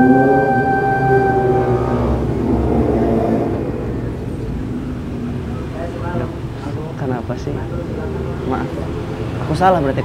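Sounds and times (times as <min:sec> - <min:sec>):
low background rumble: 0:00.0 - 0:06.6.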